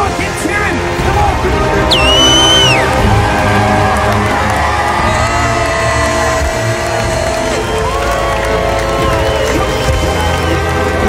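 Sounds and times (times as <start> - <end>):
live worship music: 0.0 - 11.0
crowd cheering: 0.9 - 11.0
shrill whoop: 1.9 - 3.0.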